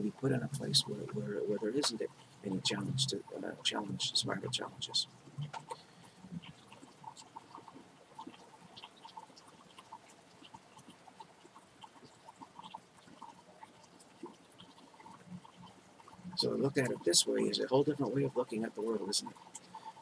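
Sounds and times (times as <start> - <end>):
faint steady rain: 0.0 - 20.0.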